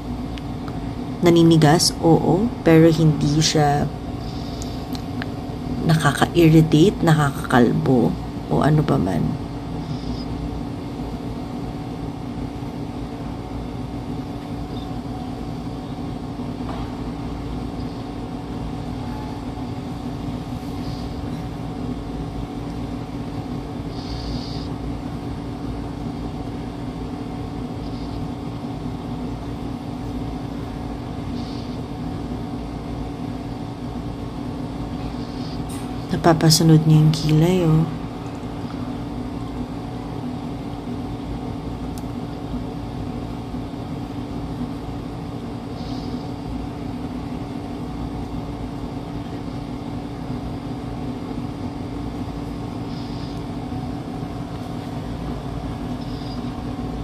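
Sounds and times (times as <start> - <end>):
low mechanical hum: 0.0 - 57.0.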